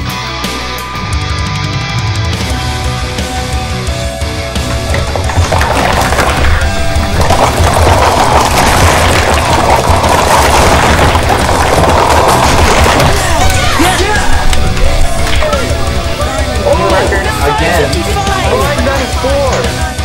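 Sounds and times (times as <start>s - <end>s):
heavy metal music: 0.0s - 20.0s
plastic cups clattering: 4.5s - 19.9s
voices: 12.9s - 20.0s.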